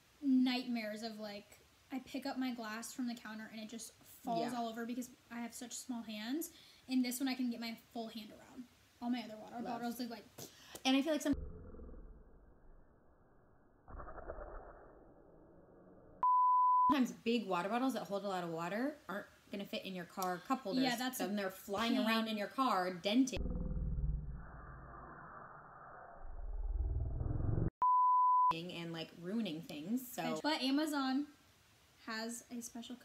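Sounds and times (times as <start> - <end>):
person talking: 4.2 - 4.8, 20.2 - 22.8, 30.0 - 30.8
high-pitched censor beep: 16.2 - 17.0, 27.8 - 28.6.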